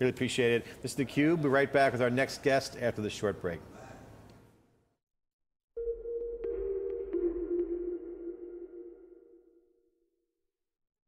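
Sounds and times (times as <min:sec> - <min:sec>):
held synth tone: 0:05.8 - 0:09.9.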